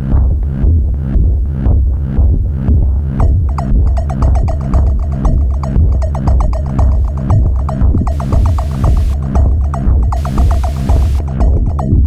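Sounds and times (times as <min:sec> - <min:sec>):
pulsing synthesizer bass: 0:00.0 - 0:12.0
fast plucked synth notes: 0:03.2 - 0:12.0.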